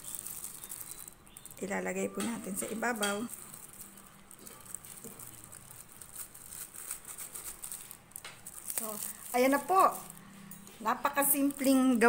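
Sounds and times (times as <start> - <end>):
crumbs ticking: 0.0 - 12.0
plastic glove crinkling: 0.0 - 12.0.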